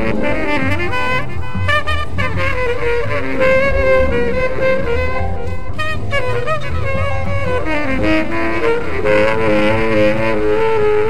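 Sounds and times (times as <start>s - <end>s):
tenor saxophone improvising: 0.0s - 11.0s
upright bass held tone: 0.0s - 11.0s.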